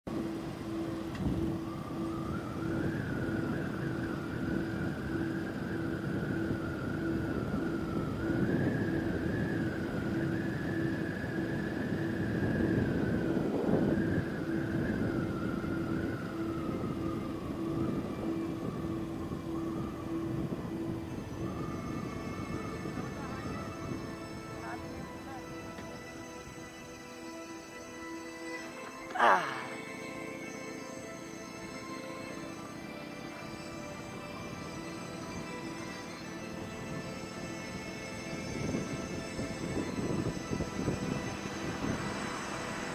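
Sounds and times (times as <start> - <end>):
low pulsing tone: 0.1 - 26.4, 28.6 - 36.9
wind rushing over microphone: 0.1 - 27.0, 33.4 - 42.9
whistling tone: 0.2 - 42.9.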